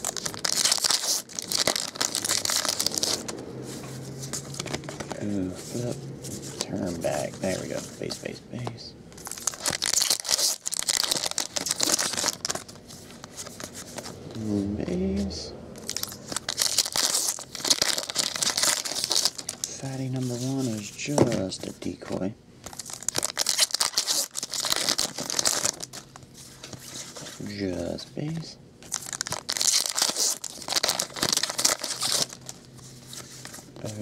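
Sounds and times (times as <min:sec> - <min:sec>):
foil wrapper crackling: 0:00.0 - 0:03.4, 0:09.2 - 0:13.8, 0:15.8 - 0:20.8, 0:22.7 - 0:26.3, 0:28.9 - 0:32.7.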